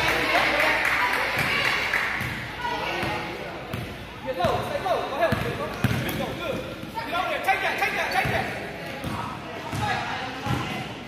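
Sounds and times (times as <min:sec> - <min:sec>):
voices in echoing gym: 0:00.0 - 0:11.0
basketball bouncing on gym floor: 0:05.2 - 0:06.2, 0:08.2 - 0:10.8.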